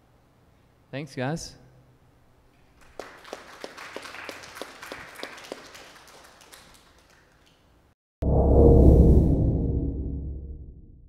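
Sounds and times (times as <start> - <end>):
audience applauding: 2.8 - 7.7.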